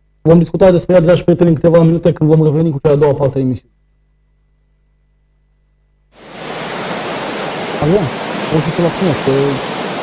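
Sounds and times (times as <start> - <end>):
man speaking: 0.3 - 3.7, 7.8 - 9.6
rushing surf sound effect: 6.2 - 10.0.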